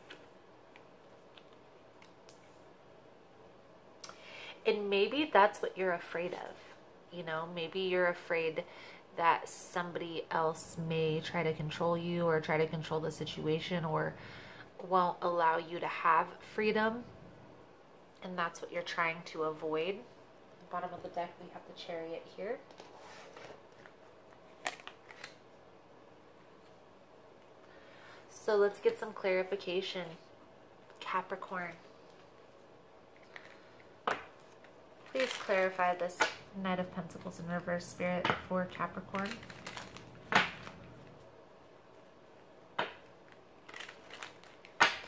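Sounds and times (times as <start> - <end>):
cards rustling: 22.7 - 25.4, 33.2 - 36.4, 38.8 - 41.3, 42.8 - 45.0
playing card snap: 44.8 - 45.0.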